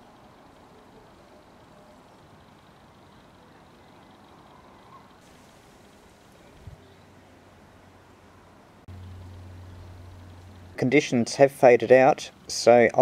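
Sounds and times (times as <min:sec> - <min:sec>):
faint background noise: 0:00.0 - 0:13.0
steady low hum: 0:00.0 - 0:13.0.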